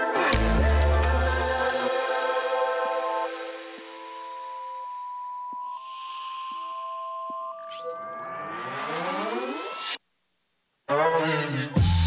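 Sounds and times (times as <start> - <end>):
soft hissing swell: 1.8 - 4.9, 5.6 - 10.0
sustained electronic tones: 3.2 - 10.0.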